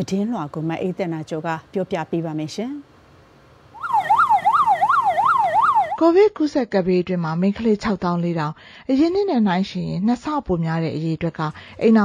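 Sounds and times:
ambulance siren: 0:03.8 - 0:06.0.

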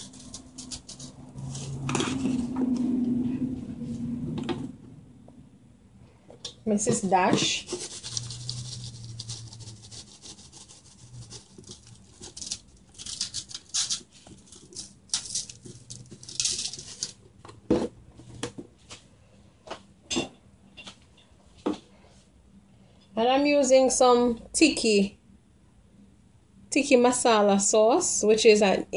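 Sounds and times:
seasoning shaker rattling: 0:07.4 - 0:17.2.

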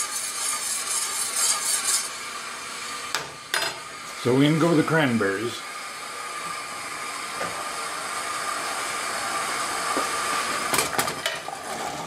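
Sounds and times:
metal spoon scraping a saucepan: 0:00.0 - 0:02.2.

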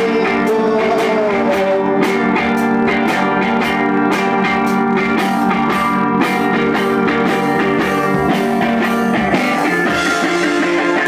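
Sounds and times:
drums: 0:00.0 - 0:11.0
electric guitar: 0:00.0 - 0:11.0
live rock band instrumental: 0:00.0 - 0:11.0.

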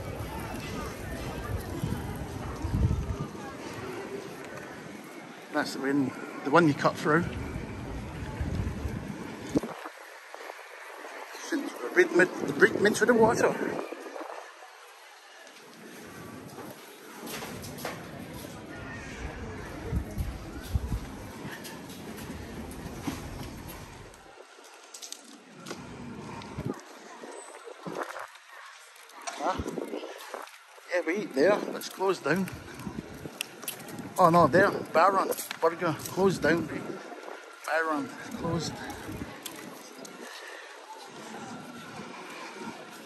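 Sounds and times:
steady outdoor background hiss: 0:00.0 - 0:43.0.

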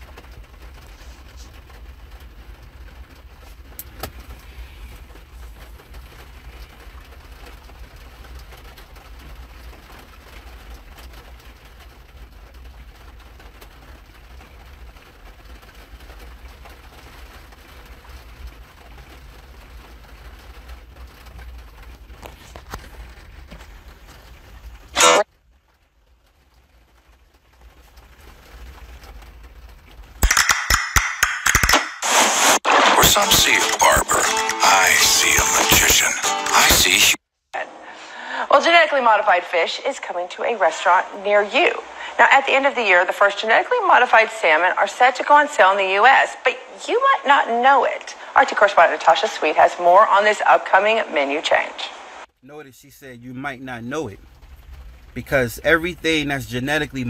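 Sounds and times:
advertisement music from phone: 0:33.0 - 0:37.0
low background hum: 0:37.6 - 0:57.0
faint hiss: 0:51.2 - 0:57.0.

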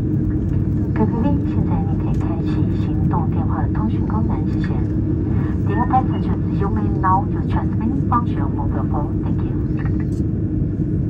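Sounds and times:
jet engines rumbling in cabin: 0:00.0 - 0:11.0
voice on public address: 0:01.0 - 0:10.2.

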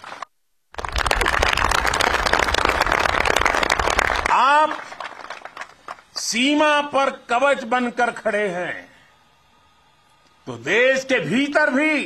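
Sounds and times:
crowd applauding: 0:00.0 - 0:06.1
speech: 0:04.3 - 0:04.9, 0:06.2 - 0:09.0, 0:10.4 - 0:12.0.

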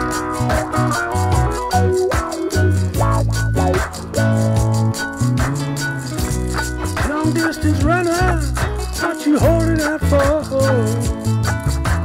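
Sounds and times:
electric guitar lead line: 0:00.0 - 0:12.0
low bass line: 0:00.0 - 0:12.0
shaker-like rattle: 0:00.0 - 0:12.0.

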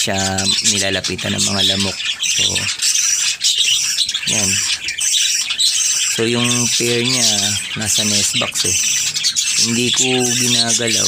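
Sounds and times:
parakeets chattering: 0:00.0 - 0:11.0.

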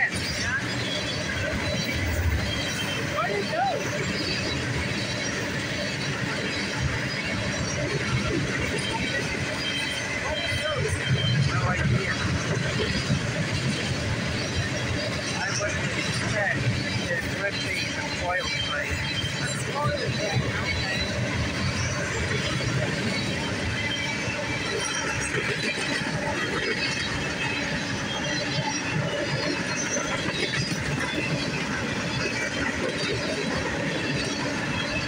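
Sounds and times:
freight cars rolling on rails: 0:00.0 - 0:35.0.

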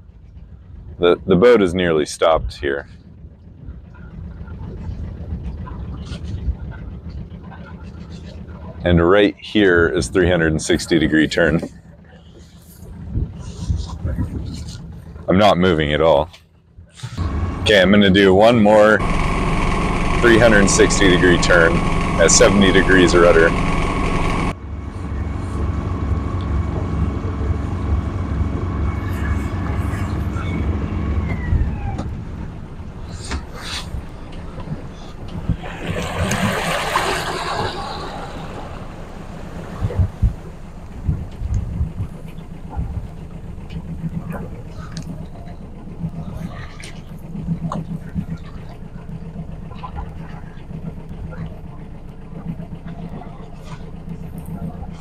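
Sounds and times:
boat engine droning: 0:00.0 - 0:55.0
rushing noise: 0:17.2 - 0:42.2.

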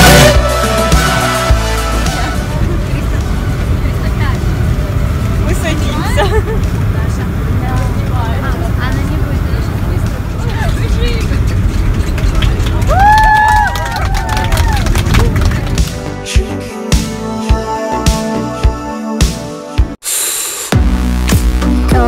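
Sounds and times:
airliner cabin rumble: 0:01.5 - 0:16.2
passengers chattering quietly: 0:02.2 - 0:12.9.

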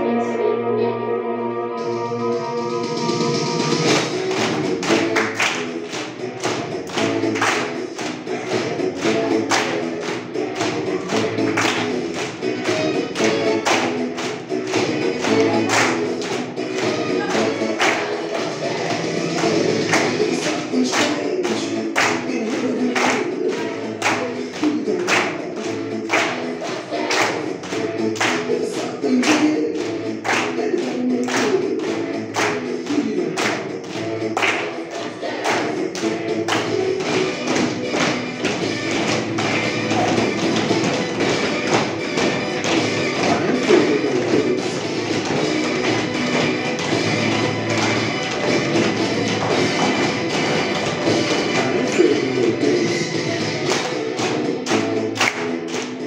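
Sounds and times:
recorded song with singing: 0:02.0 - 0:56.0
children clapping and slapping: 0:03.8 - 0:56.0.

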